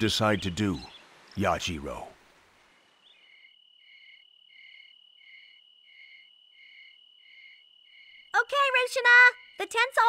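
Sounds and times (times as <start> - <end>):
faint crickets chirping: 0.0 - 10.0.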